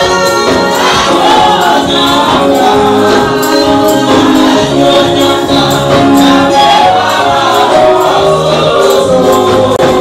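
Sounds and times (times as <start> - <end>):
voices singing together: 0.0 - 10.0.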